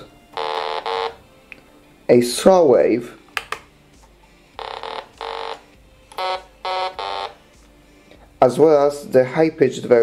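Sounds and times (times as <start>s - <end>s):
buzzy synthesizer notes: 0.0s - 1.2s, 4.6s - 7.4s.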